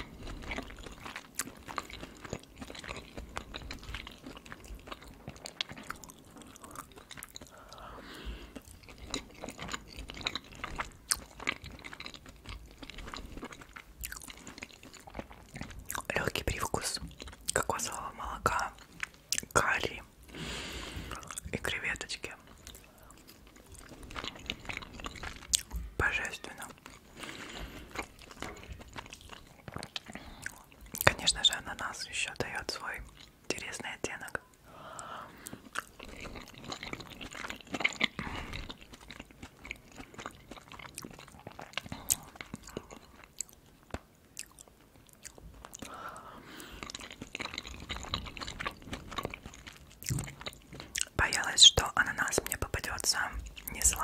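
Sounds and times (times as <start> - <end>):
chewing with wet mouth noises: 0.0 - 54.0.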